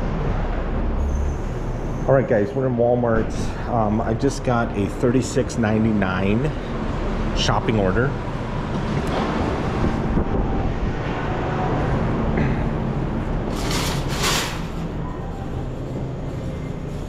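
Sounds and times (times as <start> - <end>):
shopping cart rolling: 13.4 - 15.0.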